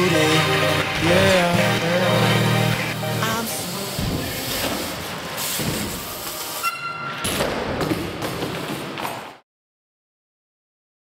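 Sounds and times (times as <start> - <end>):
bike tyres on wooden ramp: 3.8 - 9.4
brief high squeal: 6.6 - 7.2.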